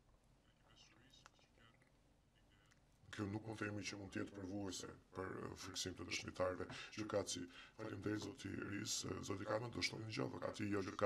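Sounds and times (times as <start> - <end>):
faint indistinct voice speaking: 0.4 - 4.7.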